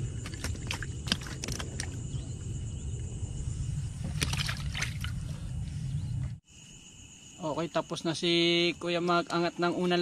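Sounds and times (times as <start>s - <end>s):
fish slapping and splashing: 0.0s - 2.0s, 4.0s - 5.2s
steady low rumble: 1.6s - 6.4s.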